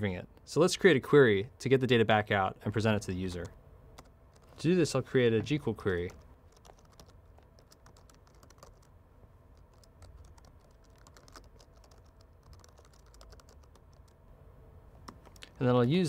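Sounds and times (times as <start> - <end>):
computer keyboard typing: 3.3 - 4.6, 6.0 - 8.9, 9.5 - 14.2, 15.0 - 15.6.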